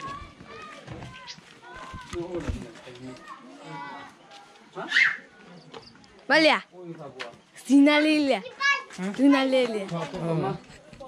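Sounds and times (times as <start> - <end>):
young children calling and chattering: 0.0 - 11.0.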